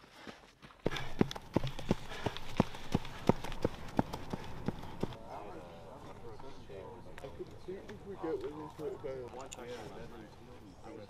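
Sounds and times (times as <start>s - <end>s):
running footsteps on dirt road: 0.0s - 5.2s
voices: 4.3s - 11.0s.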